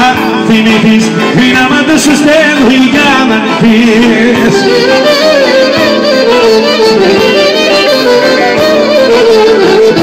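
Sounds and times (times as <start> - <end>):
folk band playing: 0.0 - 10.0
man singing: 0.0 - 10.0
clarinet melody: 2.6 - 10.0.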